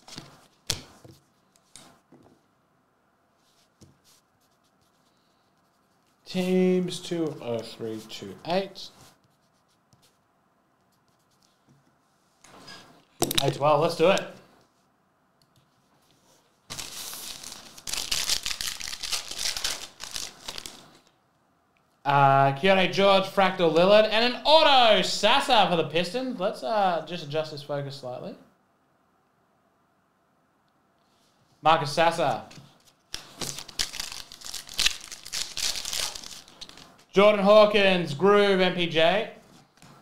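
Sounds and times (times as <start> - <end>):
foil wrapper crinkling: 16.7 - 21.0, 33.2 - 36.9.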